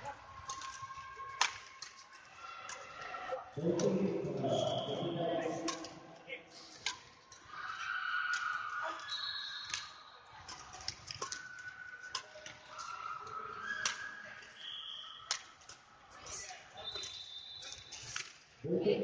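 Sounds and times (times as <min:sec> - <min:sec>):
racket hitting shuttlecock: 0:10.5 - 0:12.9.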